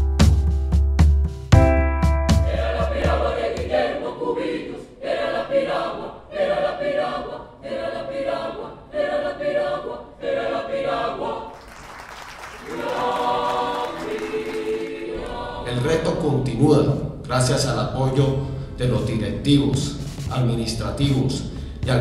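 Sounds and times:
mixed choir singing: 2.4s - 16.7s.

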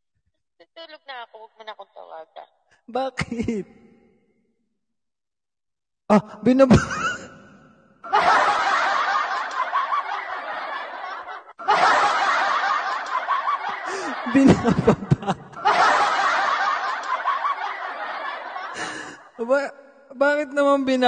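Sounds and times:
man laughing: 6.1s - 7.3s, 8.1s - 19.3s
bursts of laughter: 8.0s - 19.4s.

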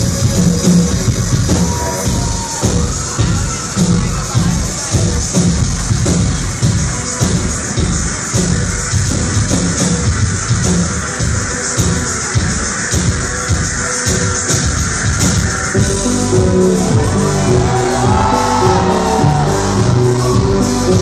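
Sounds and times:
live synth-pop band playing: 0.0s - 21.0s.

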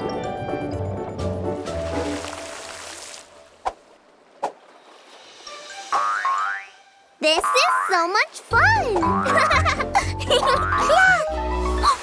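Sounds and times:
background music: 0.0s - 3.7s, 5.0s - 12.0s.

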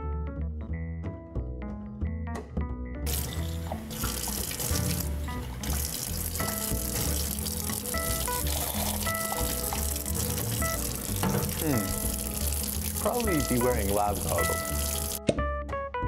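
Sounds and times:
background music: 0.0s - 16.0s
tap water running into sink: 3.1s - 15.2s.

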